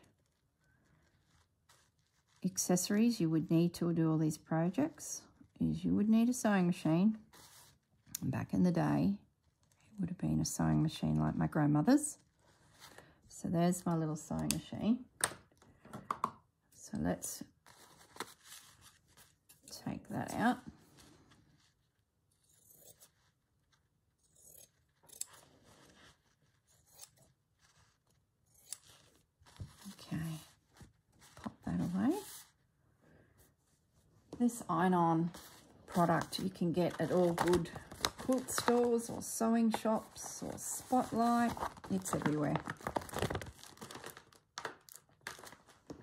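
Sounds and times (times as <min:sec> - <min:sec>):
paper crinkling and rustling: 0:00.0 - 0:02.4, 0:17.6 - 0:19.7, 0:24.7 - 0:32.6, 0:35.2 - 0:46.0.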